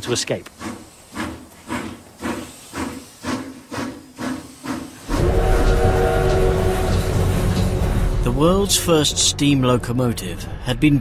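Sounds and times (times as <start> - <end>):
steam locomotive chuffing: 0.0 - 10.6
steam whistle chord: 5.1 - 8.8
low rumble: 5.1 - 11.0.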